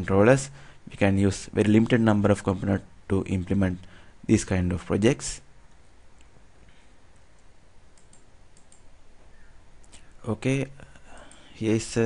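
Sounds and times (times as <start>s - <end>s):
steady background hiss: 0.0s - 12.0s
faint sharp clicks: 5.7s - 8.9s.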